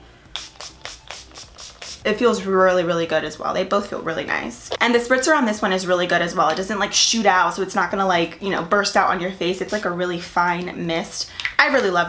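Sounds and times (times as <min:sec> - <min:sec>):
pump spray bottle spritzing: 0:00.3 - 0:02.1.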